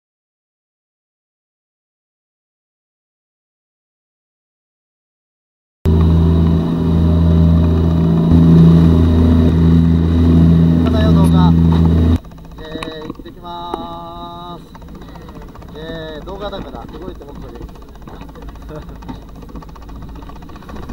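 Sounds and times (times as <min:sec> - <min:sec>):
boat engine running: 0:05.9 - 0:20.9.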